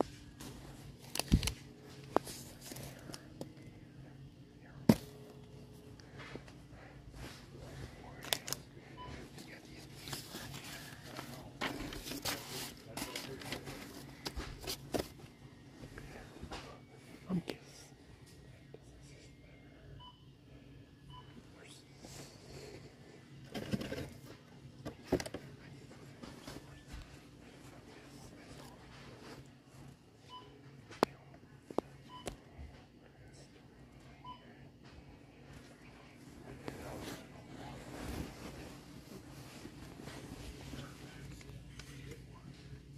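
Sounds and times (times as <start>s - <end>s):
steady low hum: 0.0s - 42.9s
paper sheets rustling: 9.8s - 15.2s.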